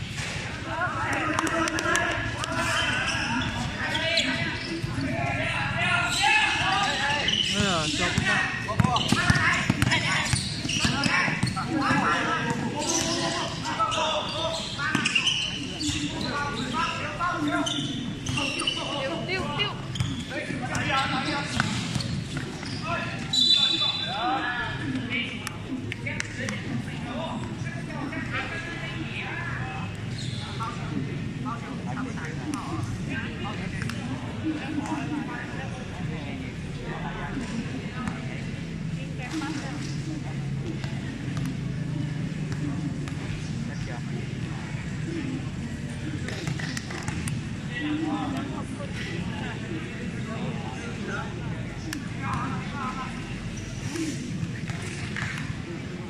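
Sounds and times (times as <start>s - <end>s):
shouting and chatter: 0.3s - 56.0s
basketball bouncing on court: 8.1s - 13.2s.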